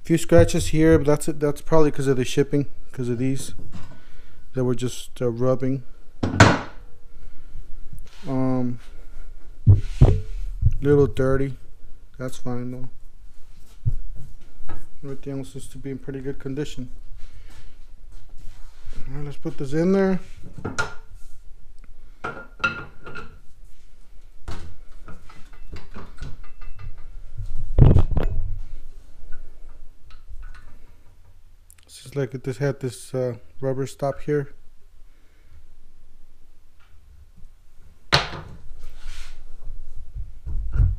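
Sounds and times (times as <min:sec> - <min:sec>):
metal clanks and knocks: 0:25.5 - 0:27.1.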